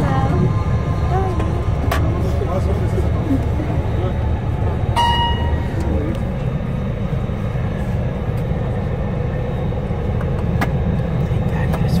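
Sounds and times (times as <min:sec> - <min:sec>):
coach engine and road noise: 0:00.0 - 0:12.0.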